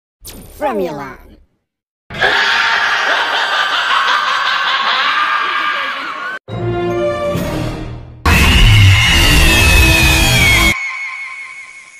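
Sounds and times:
people laughing: 2.2s - 6.4s.

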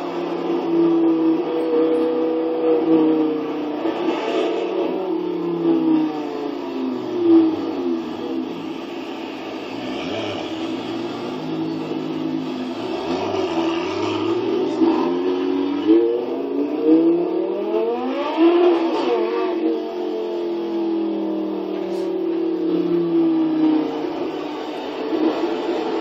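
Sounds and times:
supercar engine accelerating: 0.0s - 26.0s.

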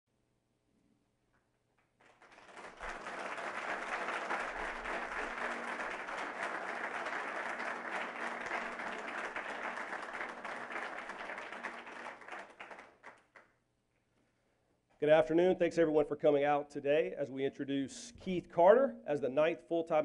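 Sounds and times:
audience applause: 2.0s - 13.4s.

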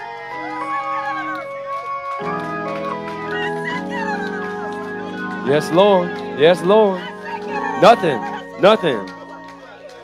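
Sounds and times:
church organ chords: 2.2s - 9.9s.

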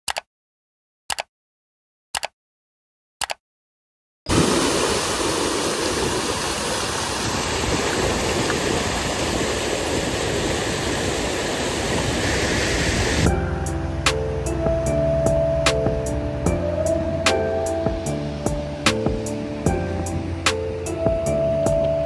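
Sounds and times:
stream rushing over boulders: 4.3s - 13.3s
music with a regular beat: 13.3s - 21.9s.

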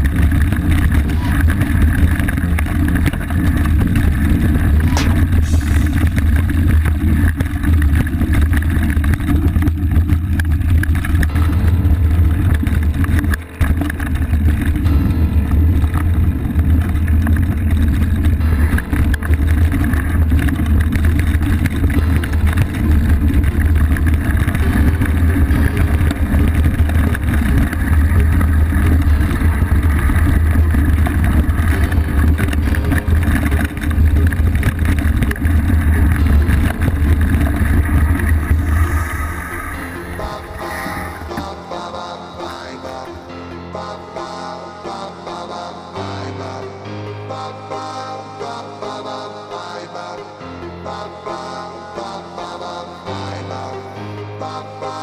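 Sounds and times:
motorcycle engine running: 0.0s - 39.7s.

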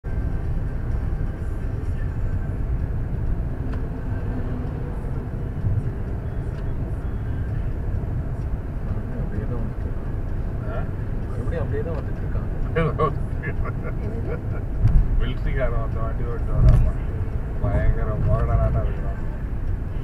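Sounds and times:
road and engine rumble in car: 0.0s - 20.0s.

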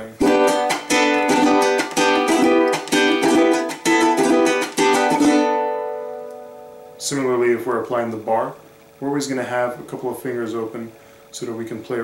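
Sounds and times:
four-string guitar strummed quickly: 0.2s - 6.1s.

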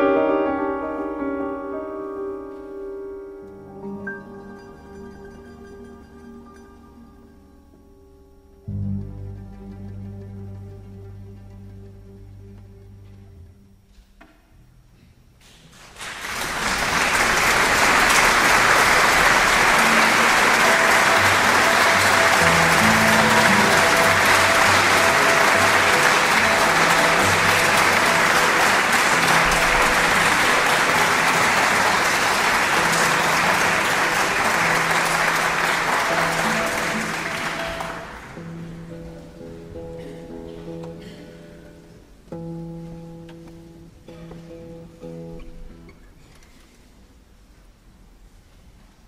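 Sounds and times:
audience applause: 15.7s - 38.8s.

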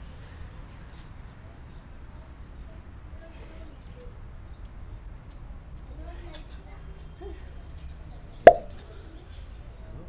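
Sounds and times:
sharp slap: 8.5s - 8.7s.

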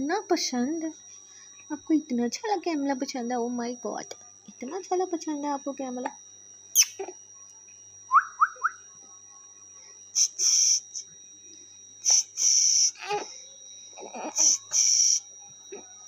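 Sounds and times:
high rising chirps: 6.8s - 7.0s, 8.1s - 8.8s
high-pitched whistles: 8.1s - 8.8s.

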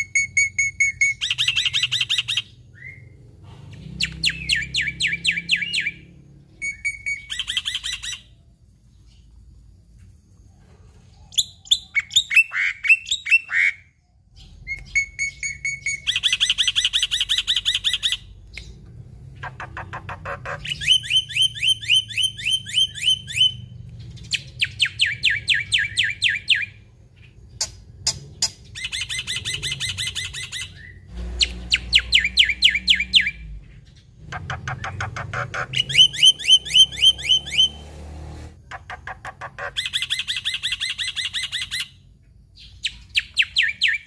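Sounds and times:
starling singing: 4.0s - 8.3s, 14.7s - 38.1s.

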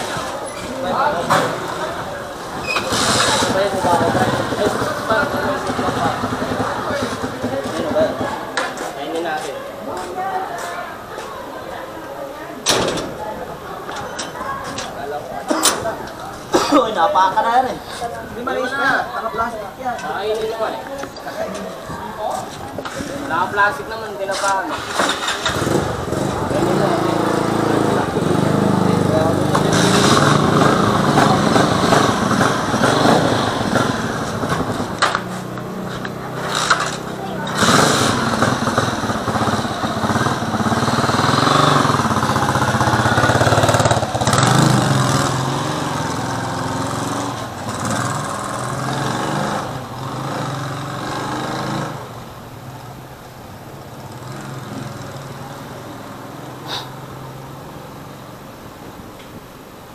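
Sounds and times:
people talking: 0.0s - 48.0s
motorcycle engine idling: 3.5s - 8.6s, 37.2s - 45.0s.

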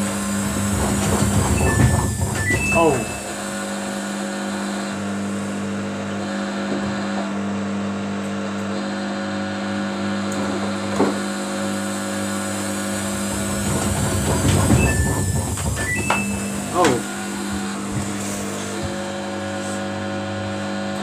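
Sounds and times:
washing machine motor humming: 0.0s - 21.0s
knock: 0.8s - 3.2s, 13.6s - 17.0s.

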